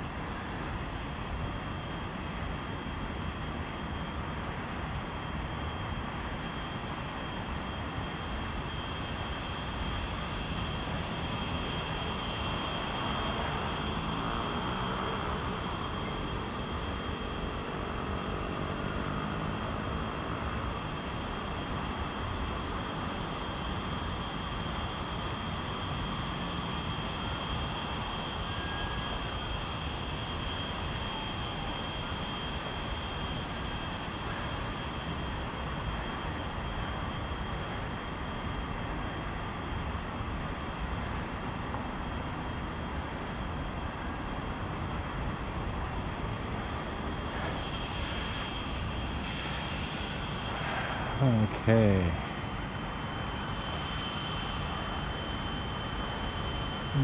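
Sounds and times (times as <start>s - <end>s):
faint high whine: 0.0s - 57.0s.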